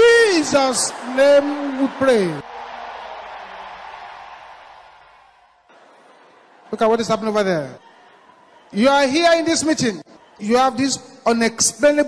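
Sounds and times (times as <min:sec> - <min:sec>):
faint crowd noise: 0:00.0 - 0:12.0.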